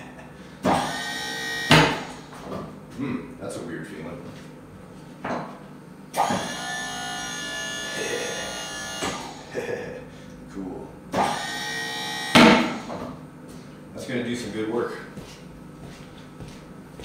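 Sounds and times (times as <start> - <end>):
hydraulic pump whining: 0.6 - 2.7, 6.1 - 10.4, 11.1 - 13.2.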